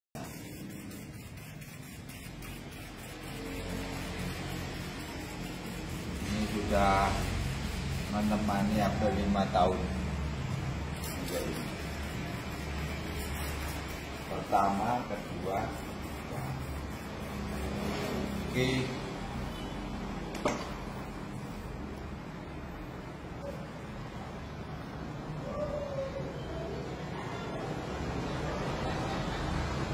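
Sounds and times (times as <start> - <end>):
low mechanical hum: 0.2 - 19.7.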